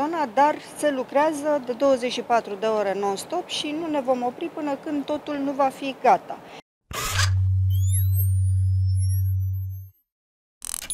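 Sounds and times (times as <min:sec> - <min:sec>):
deep synthesized hum: 0:06.9 - 0:09.9
high tones gliding upward: 0:07.6 - 0:10.0.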